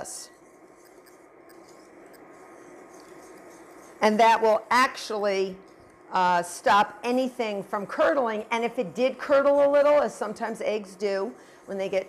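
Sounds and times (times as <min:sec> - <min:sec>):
whisk scraping a saucepan: 0:00.0 - 0:05.8.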